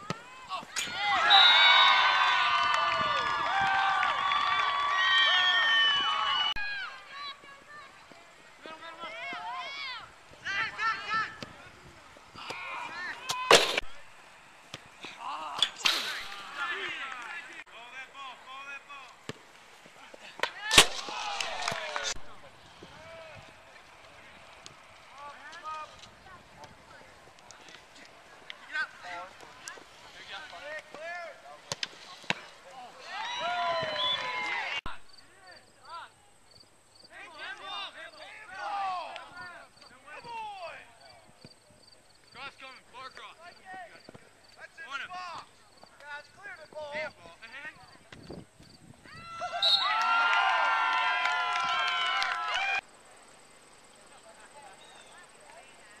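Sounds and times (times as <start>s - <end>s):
players and spectators shouting: 0.0s - 7.8s, 8.7s - 11.4s, 12.4s - 19.0s, 32.4s - 35.0s, 37.1s - 40.8s
outdoor background hiss: 0.0s - 56.0s.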